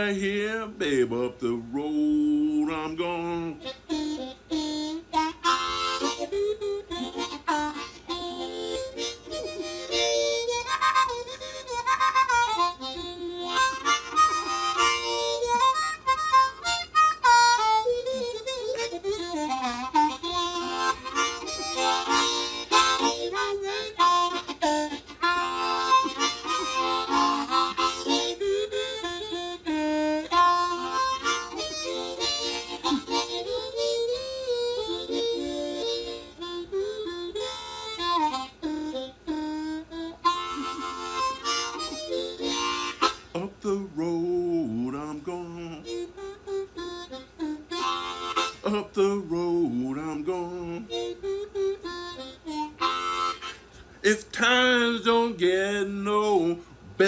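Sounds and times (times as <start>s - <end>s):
blues harmonica: 0.0s - 57.0s.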